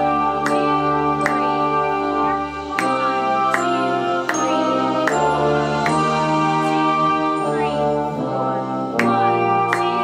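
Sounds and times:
sustained brass chords: 0.0s - 10.0s.

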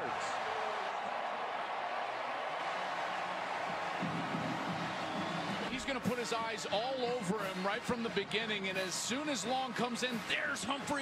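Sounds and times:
stadium crowd cheering and clapping: 0.0s - 11.0s.

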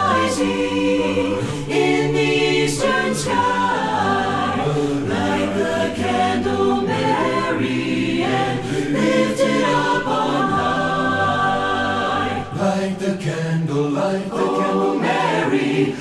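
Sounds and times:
choir singing a cappella: 0.0s - 16.0s
low voices singing bass syllables: 0.0s - 16.0s.

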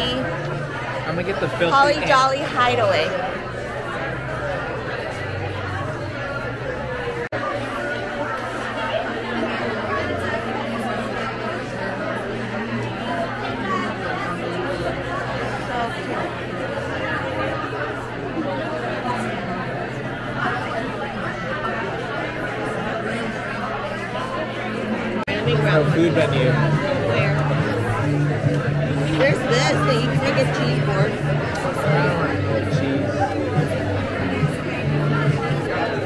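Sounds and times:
babble of voices: 0.0s - 36.0s.

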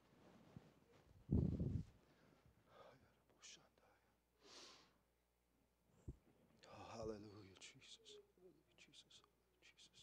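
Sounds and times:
faint whispered speech: 2.7s - 4.2s, 6.6s - 10.0s.

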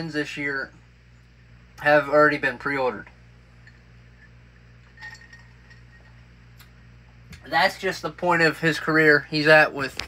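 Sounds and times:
low hum: 0.0s - 8.9s.

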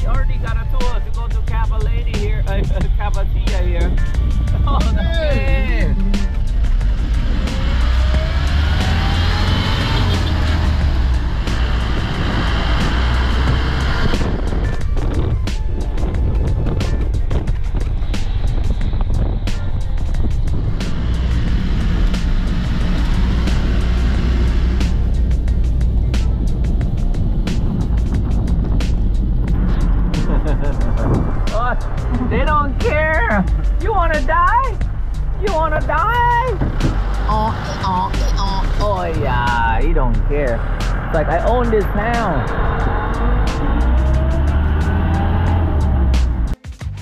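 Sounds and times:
vehicle rumble from inside cabin: 0.0s - 46.6s
music playing: 0.0s - 47.0s
knocks and rattles: 36.5s - 37.2s.

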